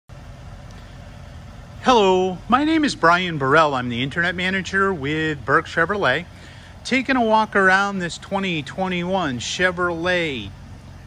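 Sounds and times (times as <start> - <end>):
steady low rumble: 0.1 - 11.0
man talking: 1.8 - 10.6.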